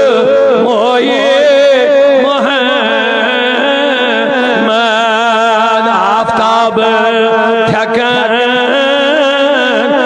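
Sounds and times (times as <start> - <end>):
man singing with vibrato: 0.0 - 10.0.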